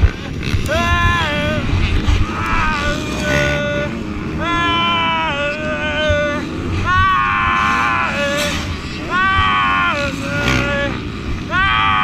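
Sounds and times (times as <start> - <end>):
man moaning in pain: 0.7 - 12.0.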